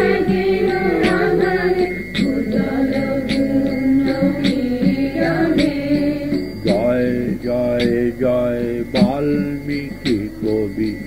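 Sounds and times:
person chanting melodically: 0.0 - 11.0.

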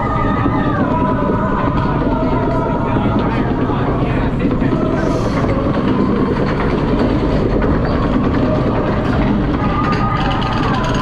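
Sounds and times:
lift chain clattering: 3.8 - 11.0.

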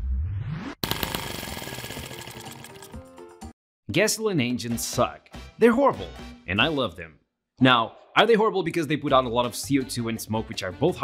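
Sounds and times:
model engine buzzing rattle: 0.8 - 2.9
background music: 0.9 - 11.0.

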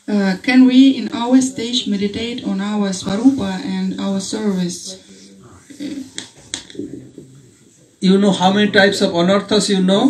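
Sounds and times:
faint indistinct voice: 0.0 - 8.0.

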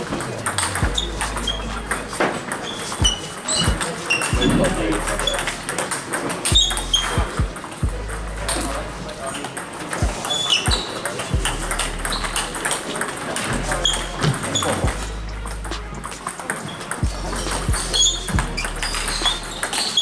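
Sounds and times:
background chatter: 0.0 - 20.0
high-pitched squeaks: 0.5 - 5.8, 6.4 - 9.4, 10.1 - 20.0
table tennis ball clicks: 15.5 - 20.0.

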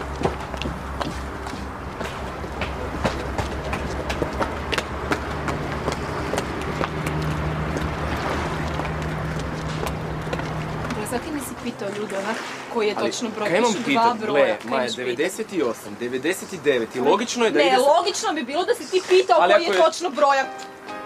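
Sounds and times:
footsteps on stone paving: 0.0 - 12.4.

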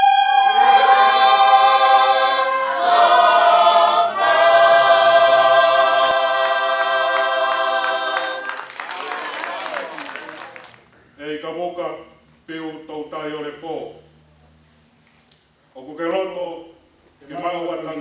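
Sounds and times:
congregation singing a hymn: 0.0 - 10.6.

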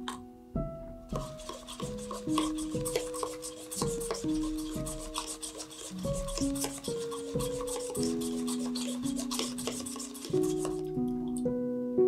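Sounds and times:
soft background music: 0.0 - 12.0
utensil scraping inside a cup: 1.1 - 11.3.

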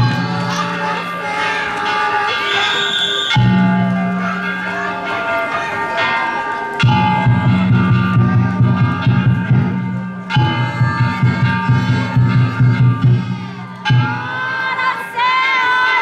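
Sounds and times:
hand gongs ringing: 0.0 - 15.1
quick steady drumbeat: 7.1 - 13.6.

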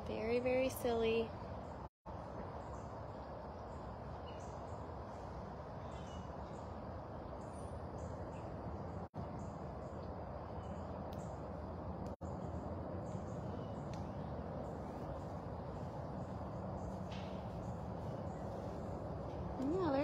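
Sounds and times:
steady background hiss: 0.1 - 20.0.

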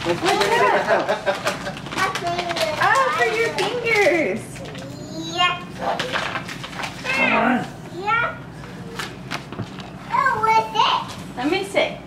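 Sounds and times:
toddler babbling: 4.8 - 5.7.

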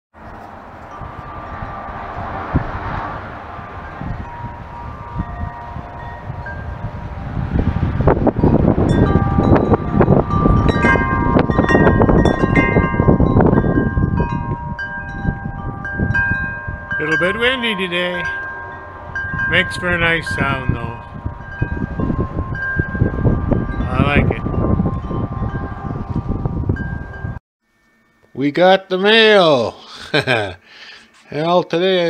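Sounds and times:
wind chimes ringing: 0.2 - 2.5, 3.6 - 30.5
wind rumbling on microphone: 0.2 - 27.4.

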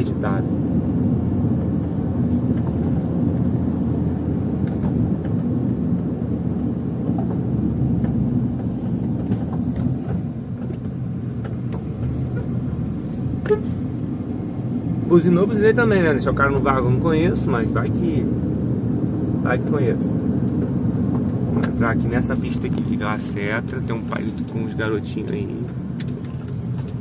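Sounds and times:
car engine rumble: 0.0 - 27.0
tyres on road: 0.0 - 27.0.

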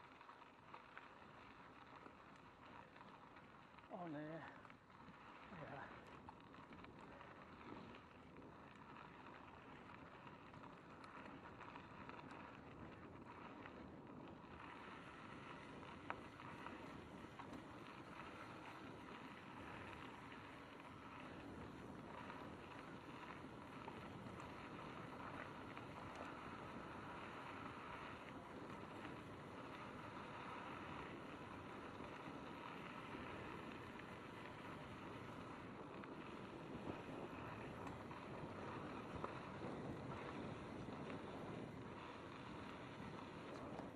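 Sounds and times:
bike tyres on dirt: 0.0 - 43.9
wind on microphone: 31.0 - 43.9.

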